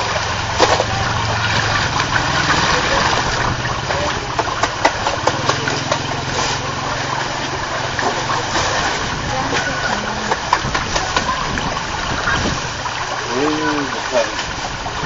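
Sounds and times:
water splashing and lapping: 0.0 - 15.0.

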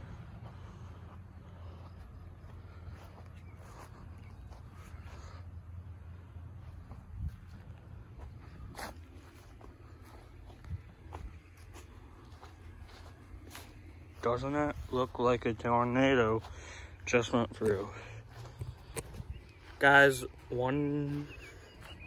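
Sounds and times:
footsteps through grass: 0.0 - 22.0.

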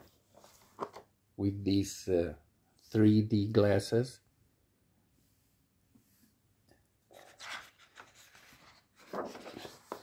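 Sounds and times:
paper page turning: 0.0 - 1.0, 7.1 - 10.0.

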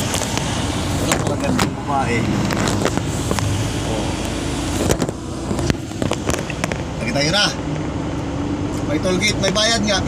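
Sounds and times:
lorry engine humming: 0.0 - 10.0.

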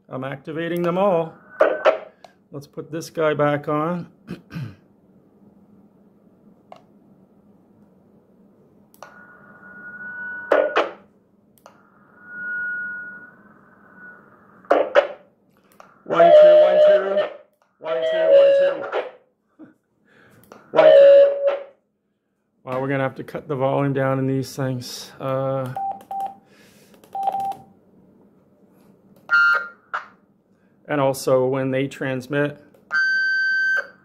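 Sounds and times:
faint low hum: 0.0 - 34.0
loud harsh radio bursts: 1.0 - 2.2, 13.2 - 15.2, 16.0 - 19.2, 20.7 - 21.7
radio hiss with whistle tone: 1.0 - 2.2, 11.8 - 15.2, 16.0 - 19.1.

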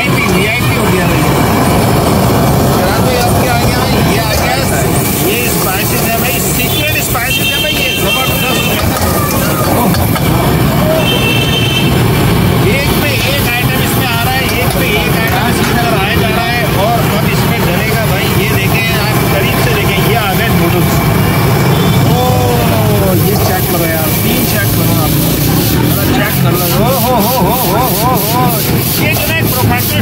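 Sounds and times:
voices: 0.0 - 30.0
gas burner low rumble: 0.2 - 7.2, 8.0 - 29.7.

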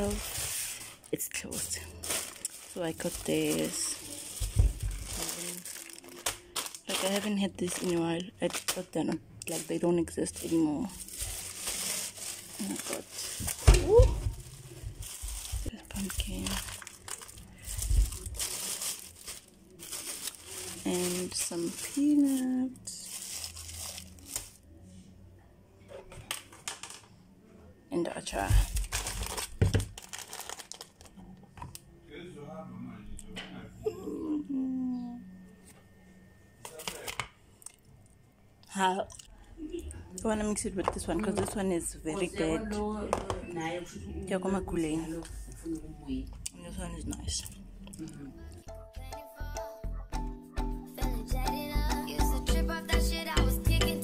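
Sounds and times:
plastic bag and foil packet crinkling: 0.0 - 24.8, 28.2 - 31.8.

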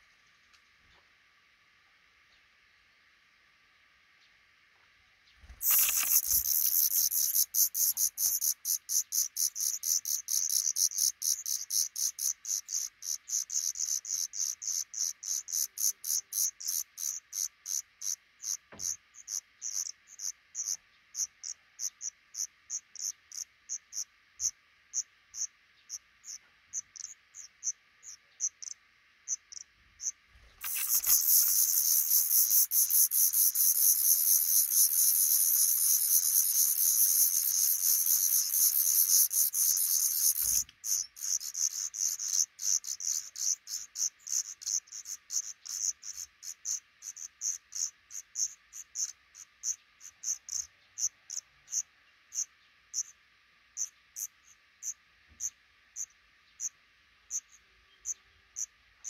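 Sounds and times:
nestlings begging calls: 5.4 - 24.5, 25.4 - 50.7.

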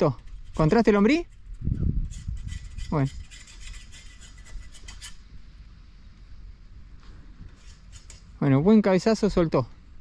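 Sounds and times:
faint rustling: 0.1 - 8.5.

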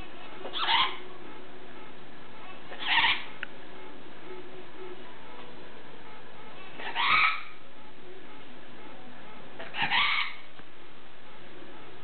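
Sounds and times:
macaw harsh calls: 2.8 - 3.3, 6.8 - 7.6, 9.8 - 10.4.

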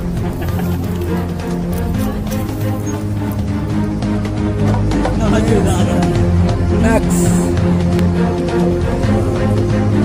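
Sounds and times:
light percussion: 0.0 - 10.0.

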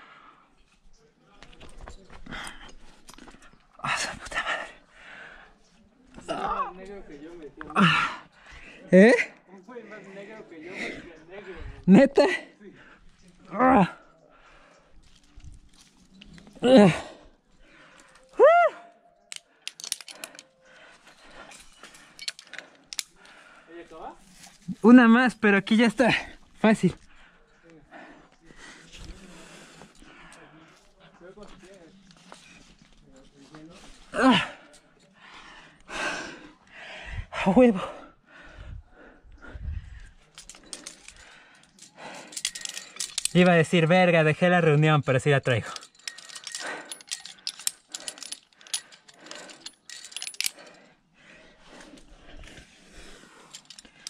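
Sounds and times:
carabiners clinking on metal: 0.6 - 9.0, 9.6 - 35.8, 39.5 - 54.0.

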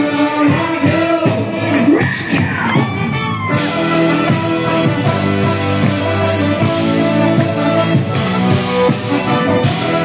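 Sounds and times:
live band with brass section: 0.0 - 10.0.

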